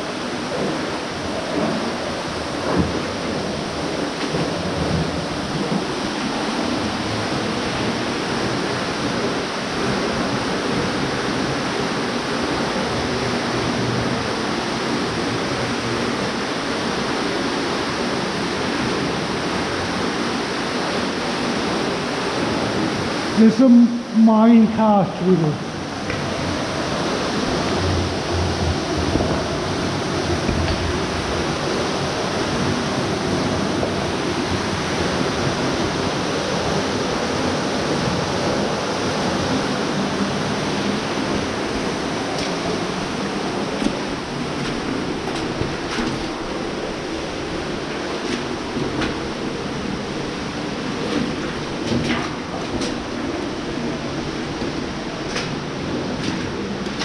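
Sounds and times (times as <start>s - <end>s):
running water rushing: 0.0s - 57.0s.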